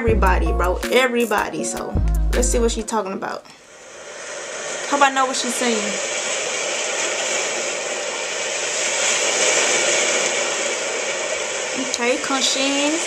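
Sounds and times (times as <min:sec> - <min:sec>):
sea surf: 0:02.9 - 0:13.0.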